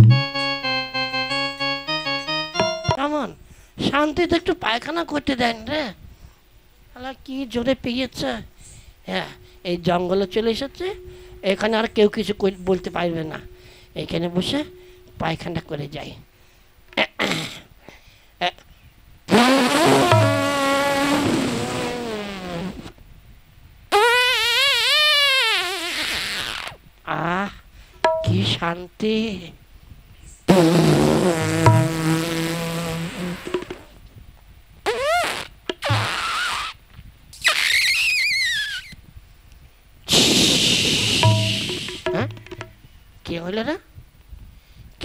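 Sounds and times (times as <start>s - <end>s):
comic fart noises: 19.3s - 22.9s, 23.9s - 26.8s, 30.5s - 33.9s, 34.8s - 36.8s, 37.4s - 38.9s, 40.1s - 42.4s
high wavering whistle squeal: 37.4s - 38.9s.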